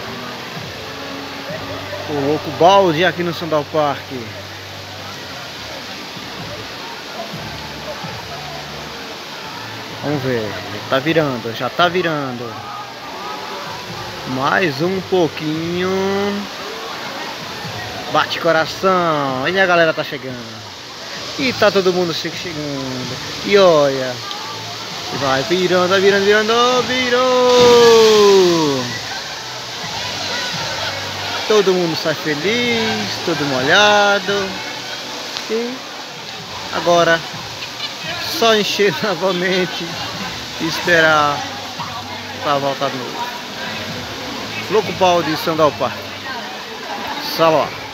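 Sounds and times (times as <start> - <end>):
water splashing from fountains: 0.0 - 47.9
faint voices: 11.5 - 14.3, 19.9 - 47.9
water crashing onto splash pad: 25.9 - 31.4.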